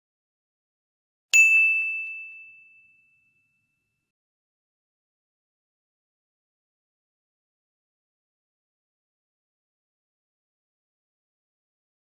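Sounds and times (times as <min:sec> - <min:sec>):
bright bell ding: 0:01.4 - 0:03.9.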